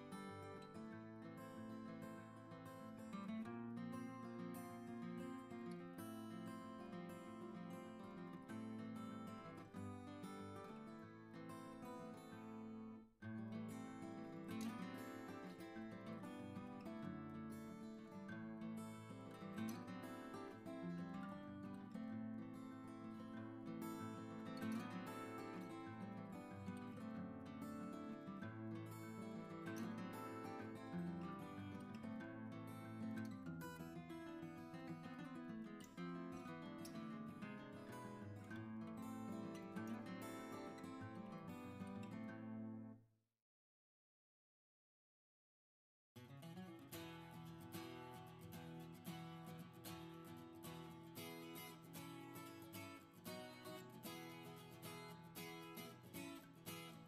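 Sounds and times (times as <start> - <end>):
acoustic guitar music: 0.0 - 43.0, 46.2 - 57.0.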